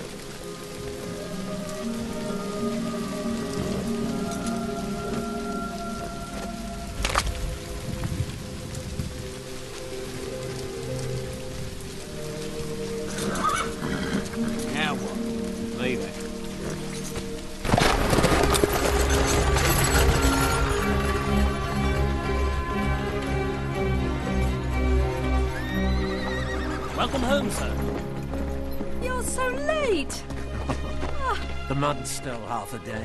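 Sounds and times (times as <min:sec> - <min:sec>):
film score held notes: 0:00.0 - 0:33.0
rain pattering: 0:00.0 - 0:33.0
horse whinnying: 0:13.1 - 0:14.6, 0:25.5 - 0:27.1.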